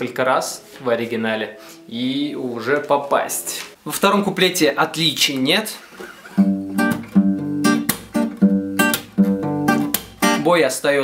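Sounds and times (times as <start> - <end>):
acoustic guitar strumming: 6.0 - 10.5.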